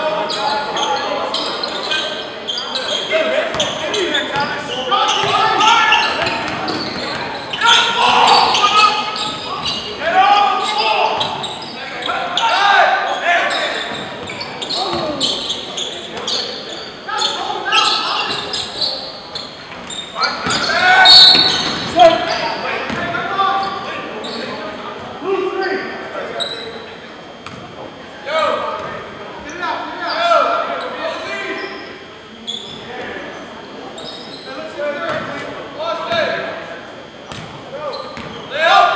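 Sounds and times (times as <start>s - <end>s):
people shouting: 7.6s - 9.2s.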